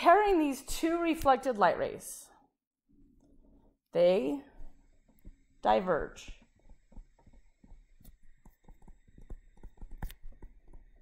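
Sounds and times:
stylus tapping on tablet screen: 6.2 - 11.0.

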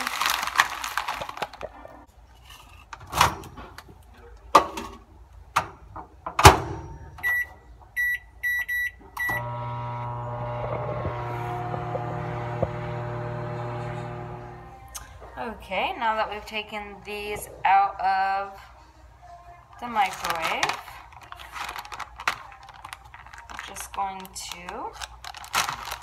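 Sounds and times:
microwave oven humming: 9.2 - 14.9.

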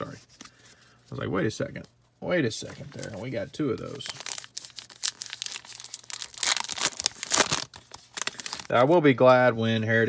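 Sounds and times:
wrapper crinkling and tearing: 3.9 - 9.0.

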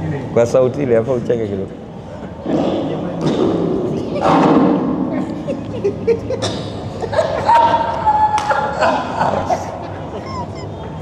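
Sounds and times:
men laughing: 5.2 - 11.0.

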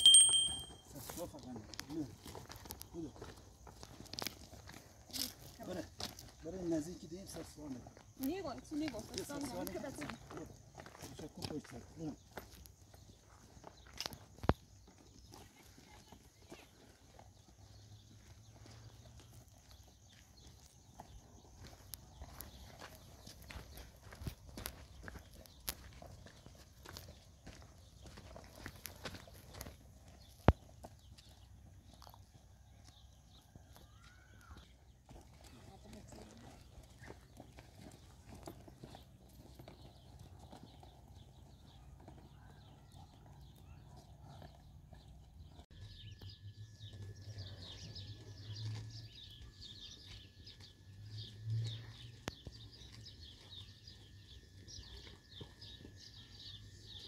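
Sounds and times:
footsteps on a stony dirt track: 0.0 - 57.0.

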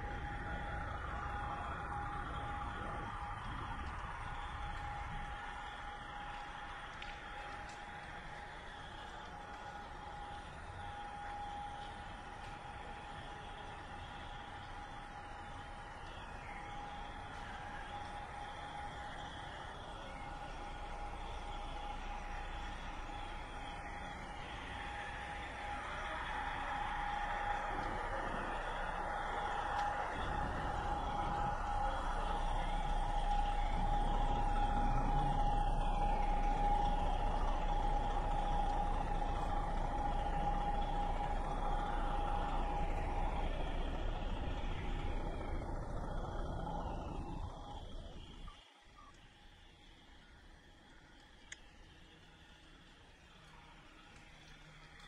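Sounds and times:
vehicle whine: 0.0 - 48.6.

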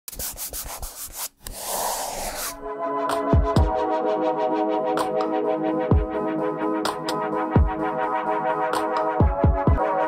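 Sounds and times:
dry scratchy rubbing strokes: 0.1 - 2.6.

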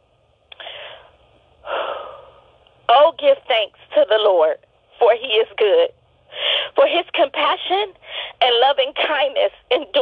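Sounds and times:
deep breath over a telephone: 0.6 - 2.5, 6.3 - 6.8, 8.0 - 8.4.

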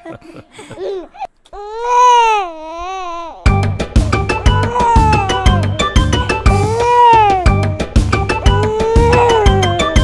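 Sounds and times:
upbeat children's song music: 3.5 - 10.0
animated baby crying: 4.4 - 7.6, 8.4 - 10.0.

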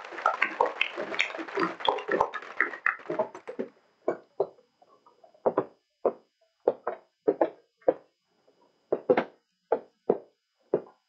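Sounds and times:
murmured voices: 0.0 - 3.5.

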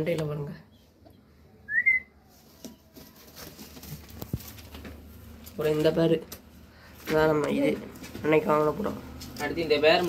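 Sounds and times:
rising whistle: 1.7 - 2.1.

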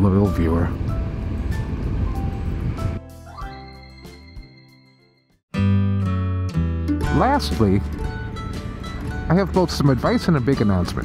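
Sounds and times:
scooter engine and wind rumble: 0.0 - 3.0
background music: 0.0 - 11.0.

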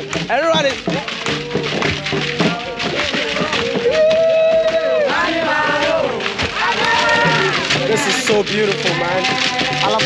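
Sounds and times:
drumming: 0.0 - 10.0
group singing religious song: 1.3 - 10.0.

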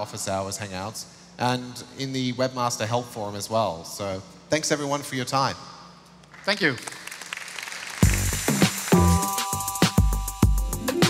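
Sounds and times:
audience applause: 6.4 - 9.4
electronic music with heavy beat: 8.0 - 11.0.

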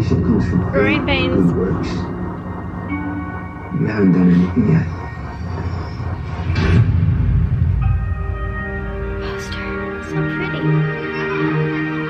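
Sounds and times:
low rumble: 0.0 - 11.3
sustained steady tones: 0.0 - 12.0.

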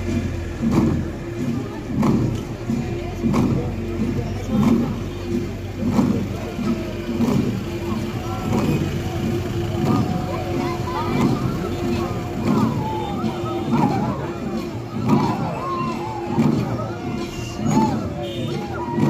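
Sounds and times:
long drums beating slowly: 0.0 - 19.0
voices: 0.0 - 19.0.

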